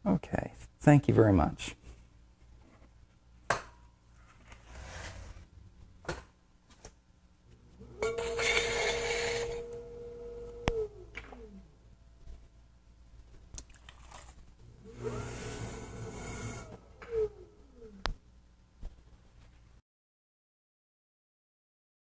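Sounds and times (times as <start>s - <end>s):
potter's wheel humming: 7.5s - 12.3s, 14.7s - 18.1s.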